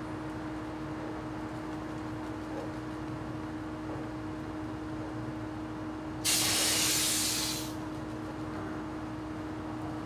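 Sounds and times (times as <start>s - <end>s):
sudden airy hiss: 6.2s - 7.8s.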